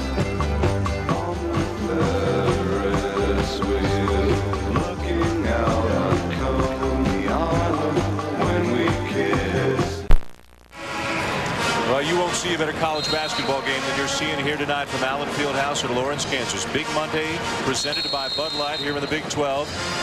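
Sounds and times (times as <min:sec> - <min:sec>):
music playing in arena: 0:00.0 - 0:10.0, 0:10.9 - 0:20.0
crowd noise: 0:11.9 - 0:19.7.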